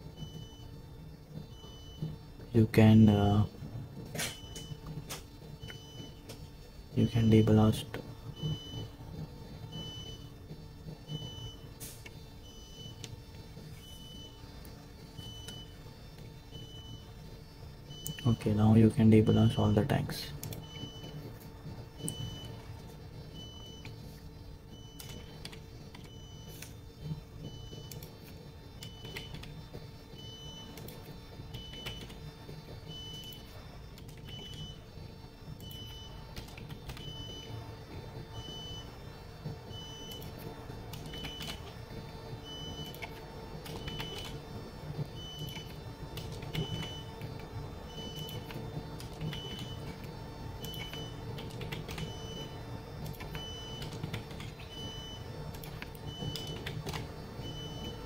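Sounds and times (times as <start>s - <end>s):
steady low hum: 0.0s - 58.0s
keyboard typing clicks: 20.4s - 21.1s, 25.0s - 26.7s, 27.7s - 29.6s, 30.7s - 32.2s, 40.0s - 41.8s, 42.8s - 44.4s, 48.1s - 54.8s, 55.5s - 57.1s.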